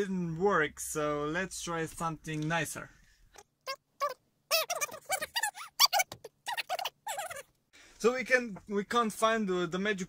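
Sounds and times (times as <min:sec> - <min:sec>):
squeaky voice chattering nonsense: 0:03.6 - 0:07.5.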